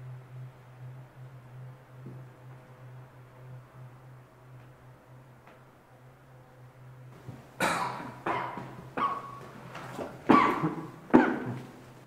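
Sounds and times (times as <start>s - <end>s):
person coughing: 7.6s - 8.7s, 10.3s - 11.6s.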